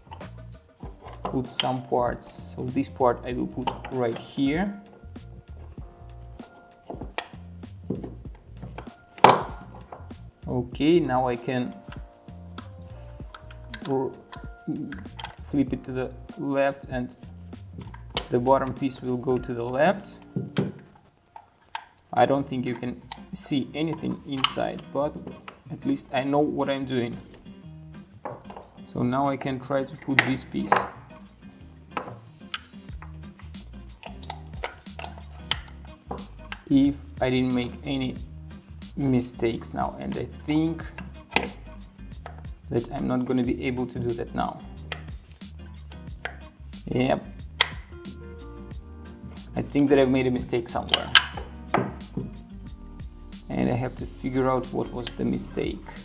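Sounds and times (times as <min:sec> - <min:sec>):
soft background music: 0:00.0 - 0:56.0
wooden blocks clicking: 0:20.2 - 0:22.1, 0:31.9 - 0:36.7, 0:47.6 - 0:47.9.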